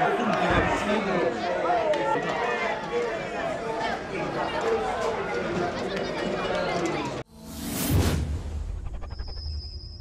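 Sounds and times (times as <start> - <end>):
people talking and calling out: 0.0 - 7.3.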